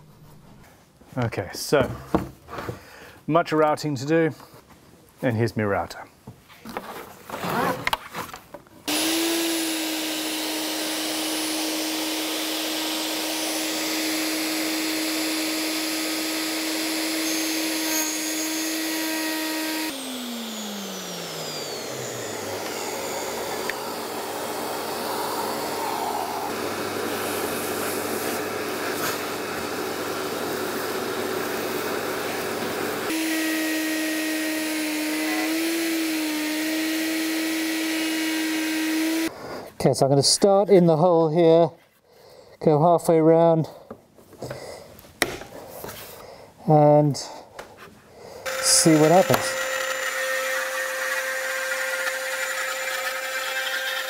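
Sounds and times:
dust extraction vacuum running: 0:08.9 - 0:39.3, 0:48.4 - 0:54.0
electric router cutting: 0:08.9 - 0:39.3, 0:48.4 - 0:54.0.

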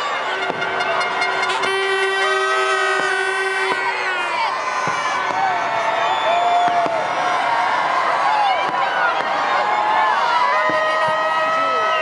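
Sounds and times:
horns blowing a chord: 0:00.0 - 0:04.6
higher horn tone: 0:00.0 - 0:04.8.

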